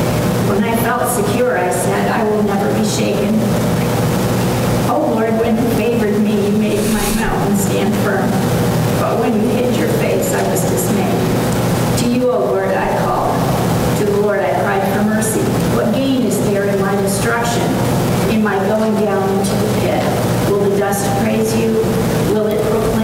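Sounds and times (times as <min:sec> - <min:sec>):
woman reading aloud: 0:00.5 - 0:03.5, 0:04.9 - 0:08.4, 0:09.0 - 0:11.3, 0:12.0 - 0:23.0.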